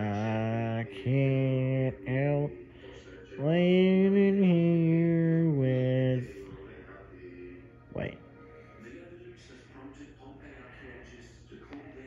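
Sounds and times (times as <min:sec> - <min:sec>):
man singing long notes: 0:00.0 - 0:02.6, 0:03.4 - 0:06.4.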